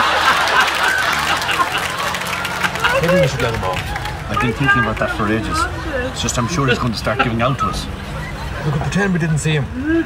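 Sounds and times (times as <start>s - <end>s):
people laughing and snickering: 0.0s - 4.3s, 5.5s - 9.1s
car engine hum: 0.0s - 10.0s.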